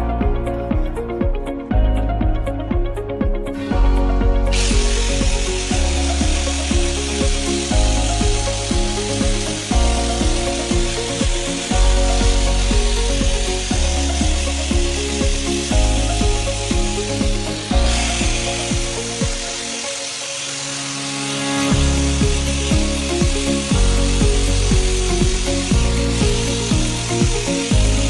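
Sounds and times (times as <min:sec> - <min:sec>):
angle grinder grinding metal pan: 0:03.6 - 0:28.0.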